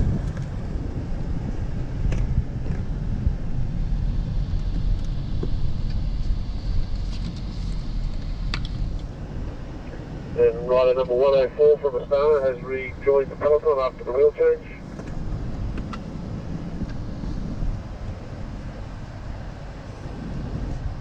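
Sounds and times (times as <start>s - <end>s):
road and wind rumble: 0.0s - 21.0s.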